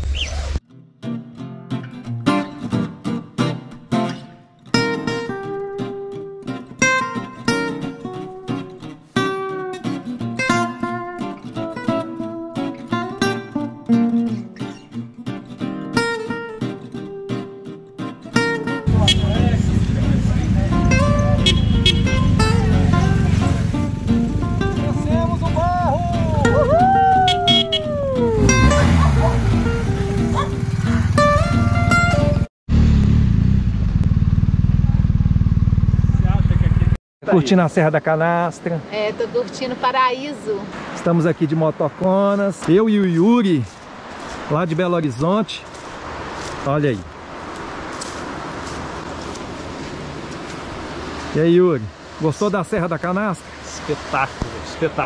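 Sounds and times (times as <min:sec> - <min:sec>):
acoustic guitar music: 0:00.6 - 0:32.5
motorcycle engines rumbling: 0:18.9 - 0:37.0.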